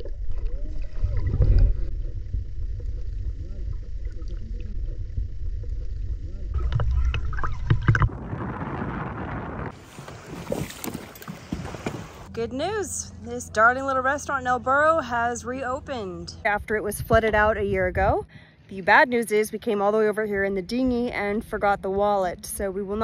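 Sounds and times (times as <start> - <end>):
faint low hum: 0.0 - 8.0
muffled underwater rumble: 0.0 - 12.3.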